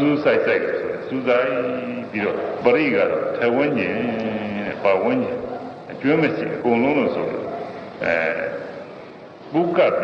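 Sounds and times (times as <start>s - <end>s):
man preaching: 0.0s - 8.9s, 9.5s - 10.0s.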